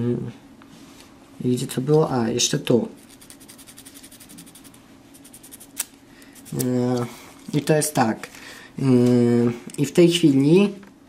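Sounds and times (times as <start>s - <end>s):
sandpaper rubbing on plastic: 3.0s - 5.8s.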